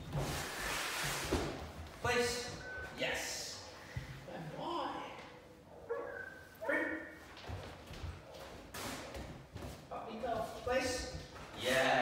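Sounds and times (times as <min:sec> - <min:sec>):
puppy yipping: 0:05.8 - 0:07.1.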